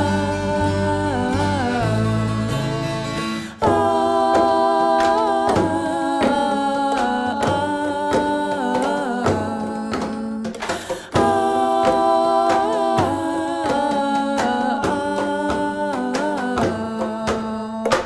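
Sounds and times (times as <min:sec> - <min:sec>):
upright bass: 0:00.0 - 0:08.1
acoustic guitar: 0:00.0 - 0:18.0
wordless singing: 0:00.0 - 0:18.0.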